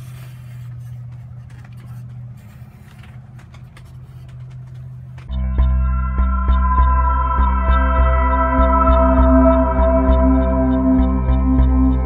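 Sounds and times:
marker scratching on foam board: 0.0 - 5.3
steady low hum: 0.0 - 12.0.

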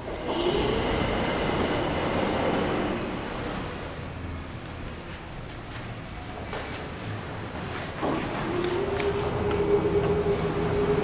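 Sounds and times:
elevator doors sliding open: 7.2 - 11.0.

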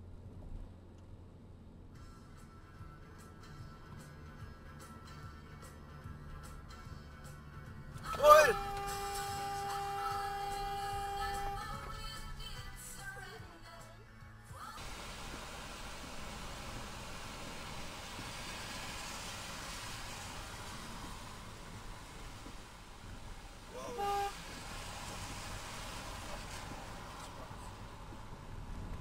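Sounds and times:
tyre and rain noise on wet road: 14.8 - 29.0.

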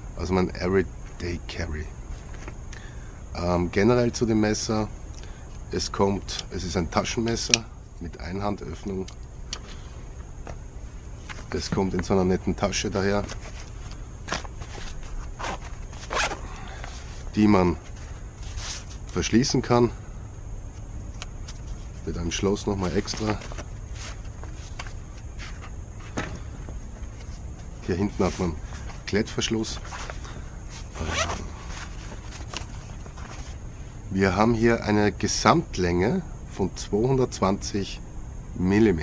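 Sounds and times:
fabric pouch rustling: 13.1 - 19.2, 29.7 - 33.6
velcro fastener ripping open: 15.1 - 16.4, 31.0 - 32.7.

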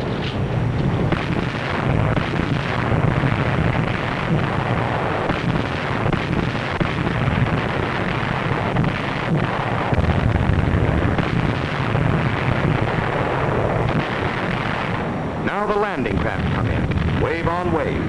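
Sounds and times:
rumble of shellfire: 0.0 - 18.0.

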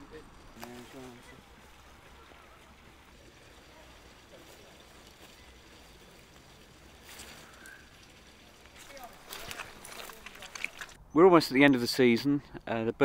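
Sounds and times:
brief rustle: 8.8 - 11.0.

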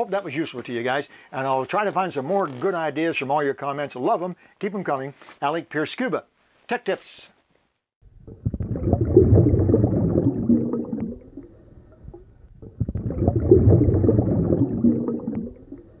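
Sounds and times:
water bubbling and gurgling: 8.1 - 16.0.

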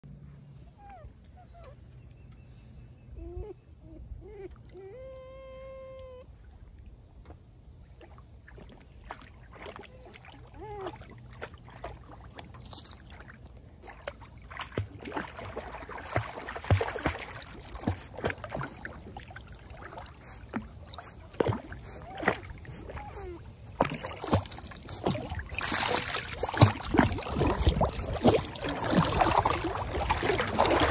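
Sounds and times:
puppies whimpering: 3.2 - 6.3, 21.9 - 23.6
puppy sloshing through water: 4.0 - 30.9
paws splashing water: 7.3 - 30.9.

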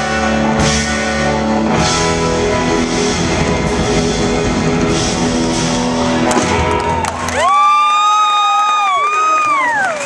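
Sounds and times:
surf rock band playing: 0.0 - 7.6
high held guitar note bending: 0.6 - 7.1
crowd cheering: 3.8 - 10.0.

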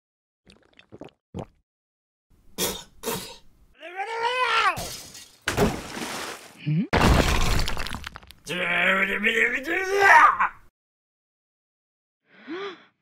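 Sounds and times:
shattering crash: 7.0 - 8.2.

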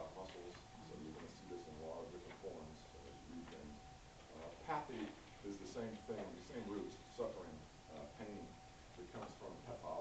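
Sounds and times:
faint indistinct speech: 0.0 - 8.4
thin steady hum: 0.0 - 10.0.

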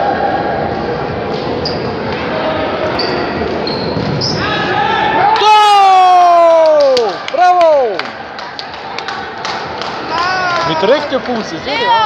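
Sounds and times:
players and spectators chatter: 0.0 - 5.3, 7.3 - 12.0
high squeaks: 2.9 - 4.5.

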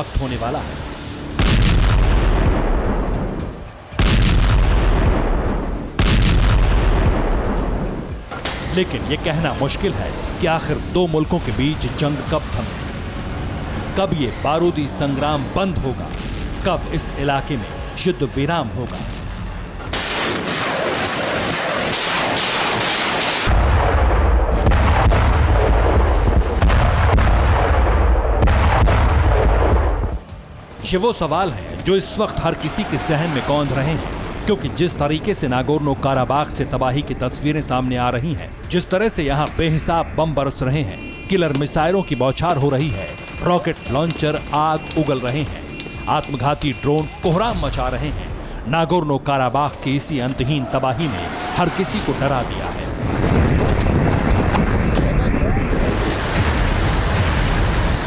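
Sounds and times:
sharp artillery reports: 0.0 - 58.0
rocket artillery blasts: 1.3 - 8.7, 19.0 - 30.2, 51.9 - 58.0.

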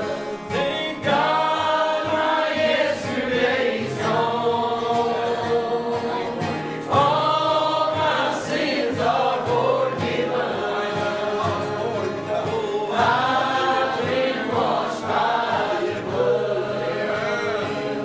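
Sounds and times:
acoustic guitar: 0.0 - 18.0
congregation singing gospel song: 0.0 - 18.0.

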